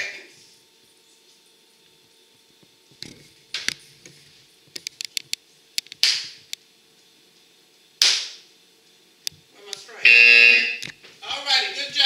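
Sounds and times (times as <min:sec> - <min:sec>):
loud electronic buzz: 0:10.0 - 0:11.0.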